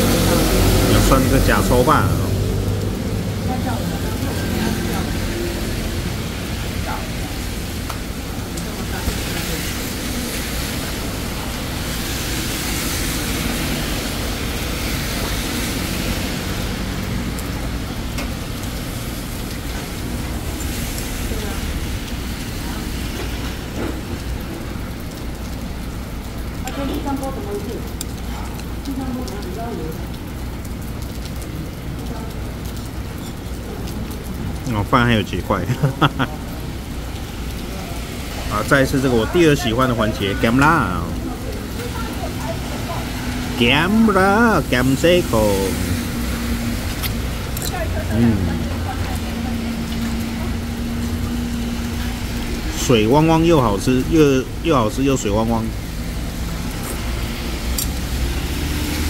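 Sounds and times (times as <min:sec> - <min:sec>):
heavy rain falling: 0:00.0 - 0:59.0
low rumble of road traffic: 0:00.0 - 0:59.0.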